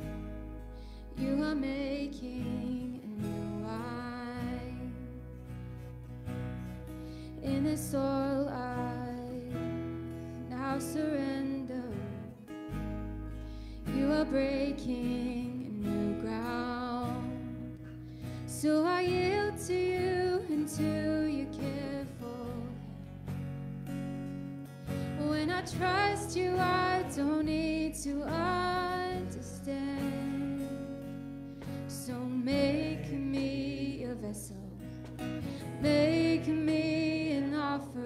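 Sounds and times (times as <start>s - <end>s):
electric bass: 0.0s - 20.2s
acoustic guitar: 0.0s - 38.0s
woman singing: 1.0s - 5.4s, 7.3s - 9.8s, 10.4s - 12.4s, 13.8s - 23.1s, 24.9s - 38.0s.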